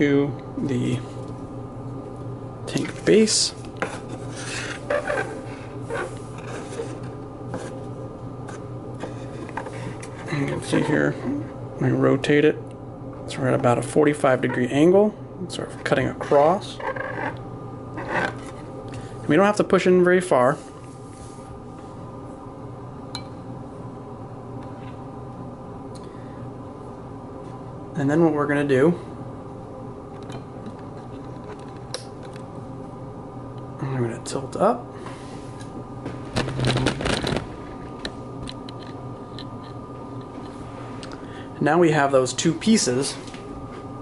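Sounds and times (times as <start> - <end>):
steady low hum: 0.0 - 44.0
rustling crackling handling noise: 36.3 - 38.0.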